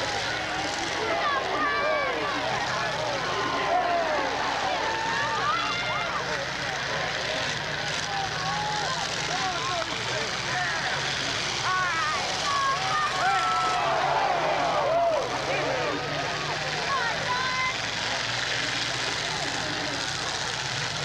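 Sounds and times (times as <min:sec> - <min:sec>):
car engines running: 0:00.0 - 0:21.0
crowd shouting and yelling: 0:00.0 - 0:21.0.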